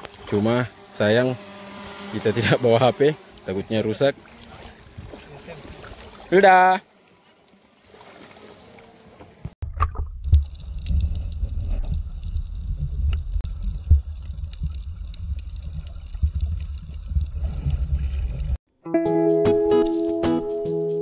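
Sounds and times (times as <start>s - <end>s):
muffled underwater rumble: 9.6s - 18.6s
water bubbling: 9.6s - 18.6s.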